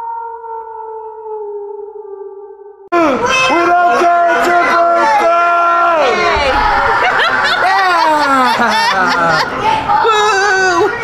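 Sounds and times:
wolf howl: 0.0s - 2.8s.

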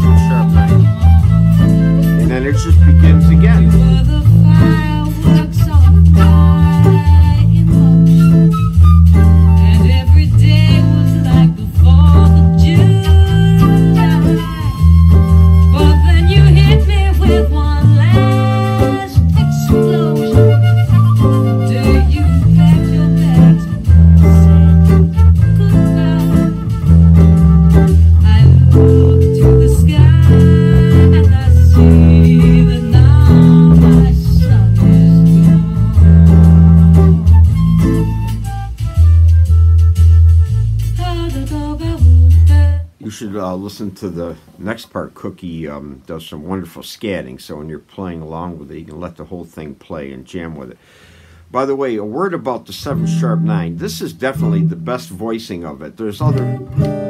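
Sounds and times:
electric guitar: 0.0s - 40.9s, 52.8s - 55.1s, 56.2s - 57.0s
blues band playing: 0.0s - 43.0s, 52.1s - 57.0s
bass guitar: 0.0s - 57.0s.

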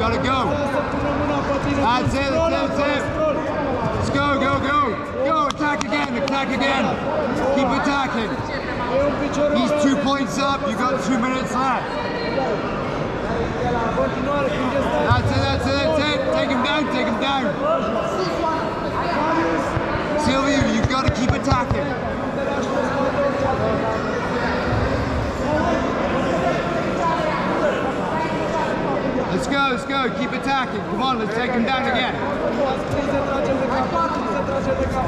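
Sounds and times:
people talking and calling out: 0.0s - 35.0s.

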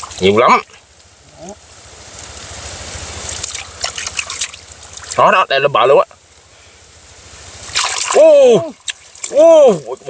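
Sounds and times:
muddy water sloshing and trickling: 0.0s - 10.0s.

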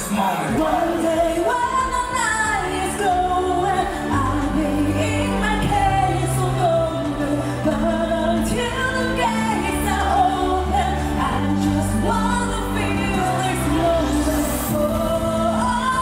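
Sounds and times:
pop song with singing: 0.0s - 16.0s.

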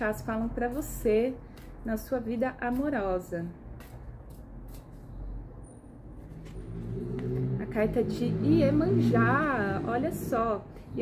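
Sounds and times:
cards being shuffled: 3.8s - 5.1s.

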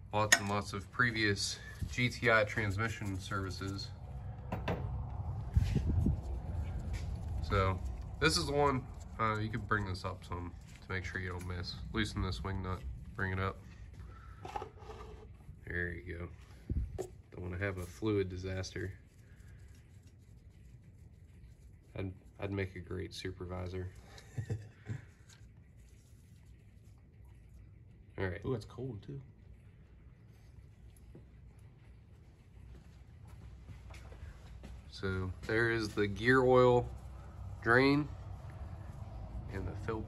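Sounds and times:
steady low hum: 0.0s - 40.0s
man chuckling: 24.2s - 25.1s.

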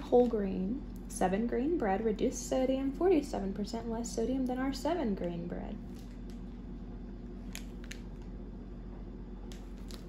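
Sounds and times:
steady low hum: 0.0s - 10.0s
plastic bread bag crinkling: 7.4s - 8.4s, 9.5s - 10.0s.

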